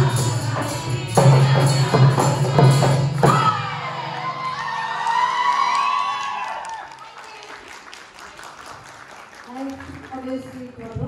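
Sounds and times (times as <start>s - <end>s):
audience applause and cheering: 3.0s - 10.8s.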